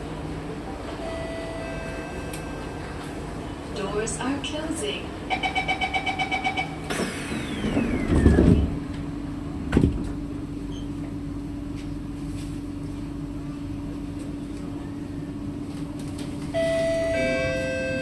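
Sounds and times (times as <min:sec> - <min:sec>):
low hum of standing train: 0:00.0 - 0:18.0
higher steady tone: 0:01.0 - 0:02.8, 0:16.6 - 0:18.0
train doors closing with whine: 0:05.3 - 0:11.2, 0:16.0 - 0:18.0.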